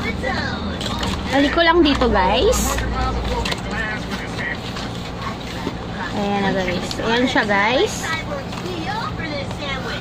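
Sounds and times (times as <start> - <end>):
faint voices: 0.0 - 10.0
steady low hum: 0.0 - 10.0.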